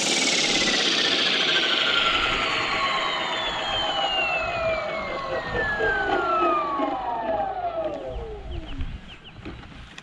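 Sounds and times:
model helicopter motor whine: 0.0 - 9.1.

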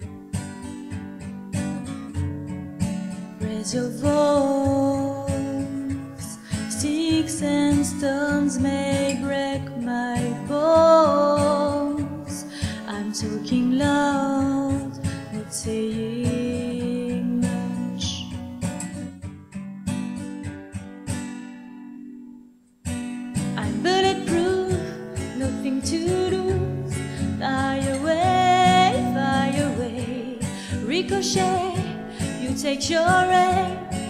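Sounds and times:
strummed acoustic guitar: 0.0 - 34.0
woman singing: 3.3 - 18.8, 23.4 - 34.0.

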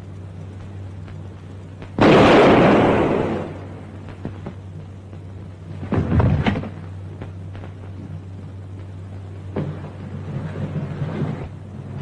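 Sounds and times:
loud bang: 2.0 - 3.8.

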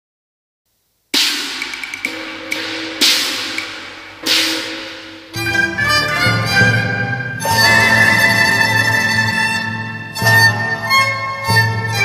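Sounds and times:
cymbal and gong crashes: 1.2 - 5.4
bowed strings: 2.1 - 12.0.

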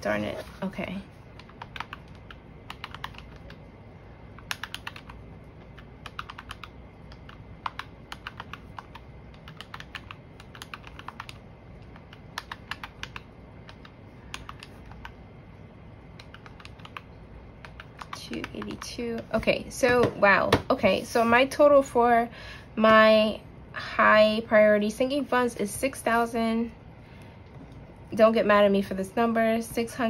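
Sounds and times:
calculator keys clicking: 1.4 - 3.6, 4.4 - 5.2, 5.8 - 15.2, 16.2 - 19.0.

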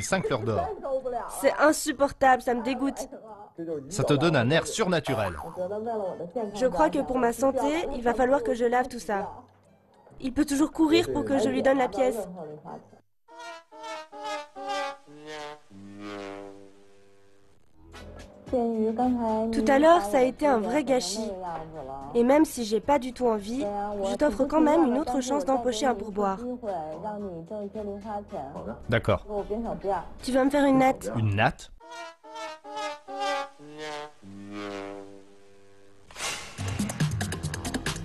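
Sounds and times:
sad trombone music sting: 13.4 - 16.9, 31.8 - 35.3.

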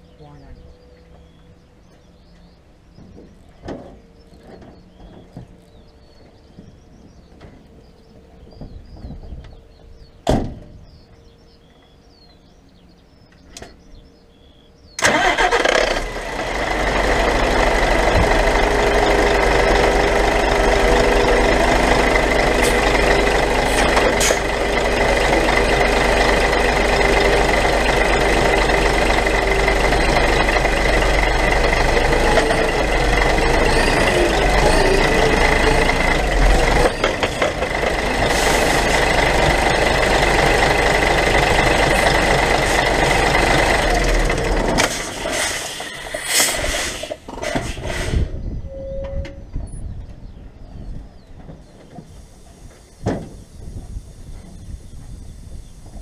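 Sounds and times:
diesel engine starting and running: 14.5 - 48.6.

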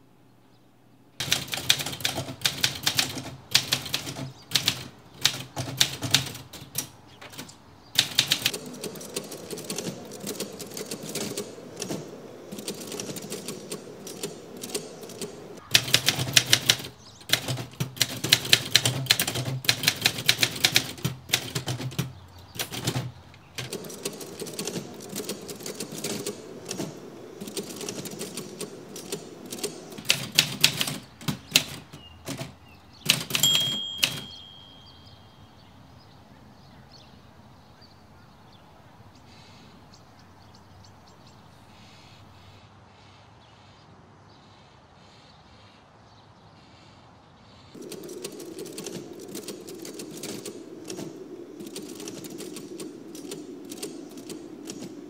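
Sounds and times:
typewriter keys striking: 1.2 - 34.8, 47.8 - 55.0.

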